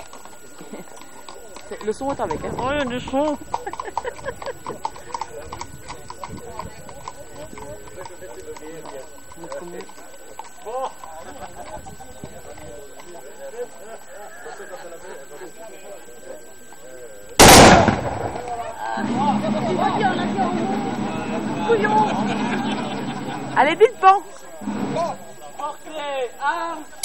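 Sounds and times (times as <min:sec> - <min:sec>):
horse hooves clip-clopping on road: 0:00.0 - 0:14.1
crowd voices: 0:00.0 - 0:27.0
musket volley: 0:17.4 - 0:18.8.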